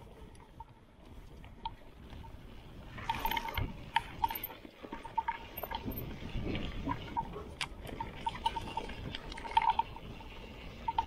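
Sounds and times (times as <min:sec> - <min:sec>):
bike tyres on dirt: 0:00.0 - 0:11.0.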